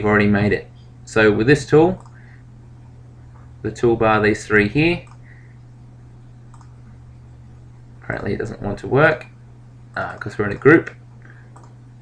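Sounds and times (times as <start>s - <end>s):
low hum: 0.0s - 12.0s
computer mouse click: 5.0s - 5.2s, 6.5s - 6.8s, 10.9s - 11.8s.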